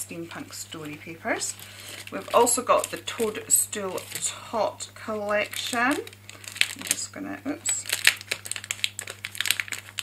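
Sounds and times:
plastic wrapper crinkling: 0.1 - 10.0.

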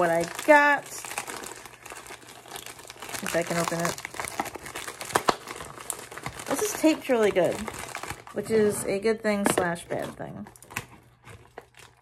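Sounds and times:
plastic mailer crinkling: 0.0 - 12.0.

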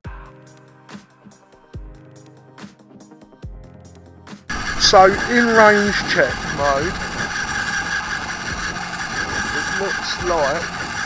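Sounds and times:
servo electric whine: 4.5 - 11.0
wind rumble on microphone: 4.5 - 11.0.

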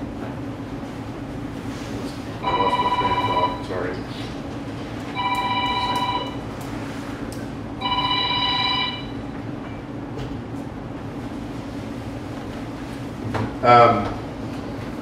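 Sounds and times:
telephone ringing: 2.4 - 3.8, 5.1 - 6.5, 7.8 - 9.2.

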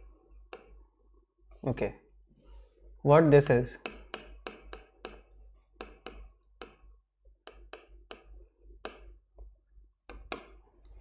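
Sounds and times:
marker pen writing on board: 0.0 - 1.0, 3.8 - 10.8.

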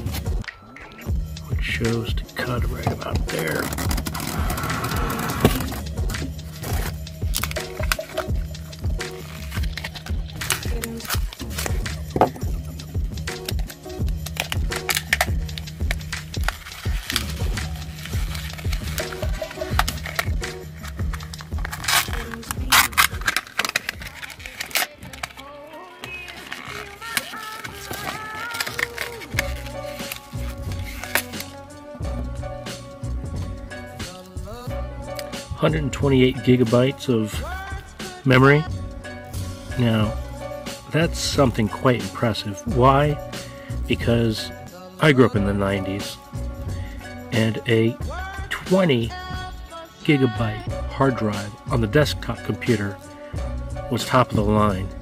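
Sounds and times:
background music with bass line: 0.0 - 25.5, 27.8 - 55.0
blister packaging crackling and tearing: 3.3 - 8.4, 9.1 - 12.0, 13.3 - 31.6.

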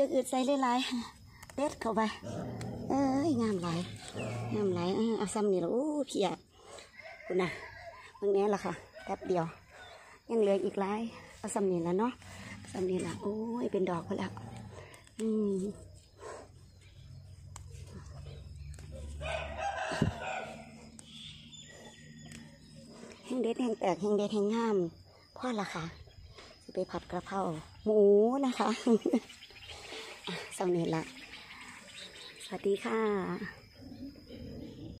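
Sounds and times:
rooster crowing: 6.9 - 8.0, 19.2 - 20.9.

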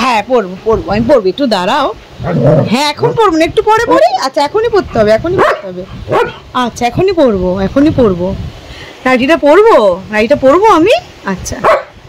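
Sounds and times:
dog yelps: 5.4 - 6.4, 11.6 - 12.0.

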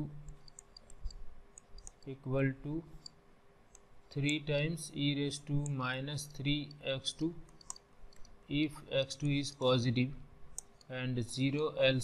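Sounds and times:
man's voice: 10.9 - 12.0.

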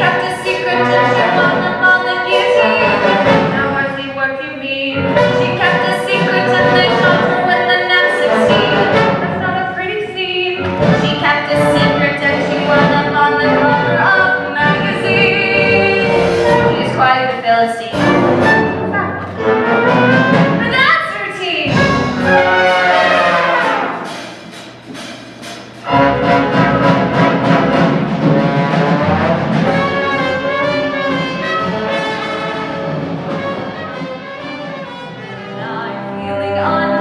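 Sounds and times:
orchestra with prominent brass: 0.0 - 4.0, 5.0 - 9.8, 10.6 - 17.2, 17.9 - 24.6, 25.8 - 37.0
voices singing: 0.0 - 4.2, 4.9 - 10.0, 11.0 - 17.2.

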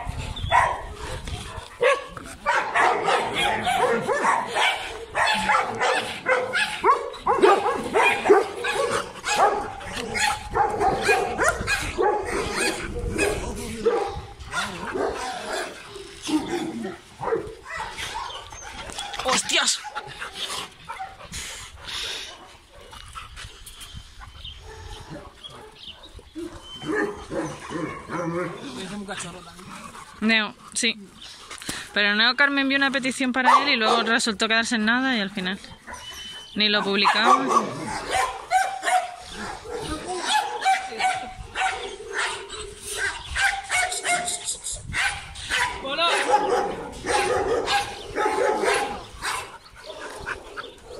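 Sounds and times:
dogs vocalizing while playing: 0.0 - 31.6, 35.6 - 50.9.

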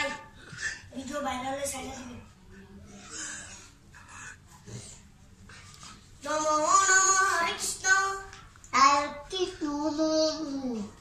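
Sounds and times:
boy singing into a microphone: 6.2 - 11.0.

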